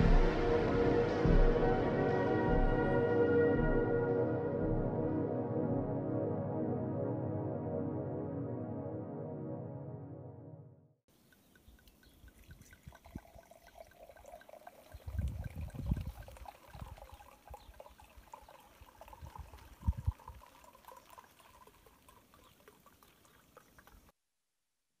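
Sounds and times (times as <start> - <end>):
thin chirping: 11.1 - 13.9
wind buffeting microphone: 14.9 - 17.8, 19.0 - 20.4.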